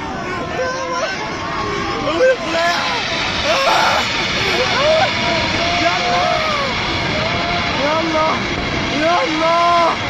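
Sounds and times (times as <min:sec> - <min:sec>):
flooding river roar: 0:00.0 - 0:10.0
people crying out: 0:00.0 - 0:10.0.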